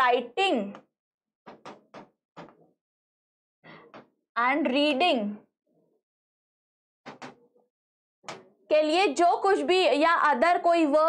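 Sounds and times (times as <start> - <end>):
pen tapping on writing board: 1.5 - 2.6, 7.0 - 7.4.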